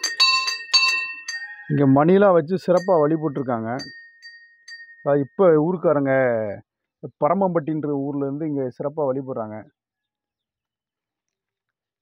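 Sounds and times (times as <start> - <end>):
light metallic clinks: 0.0 - 1.7, 2.7 - 5.1
small metal bell ringing: 0.0 - 1.8, 2.7 - 5.1.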